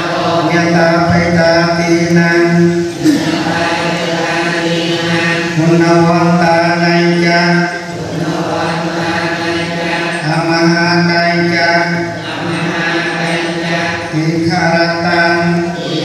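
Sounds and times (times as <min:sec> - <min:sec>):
devotional chanting: 0:00.0 - 0:16.0.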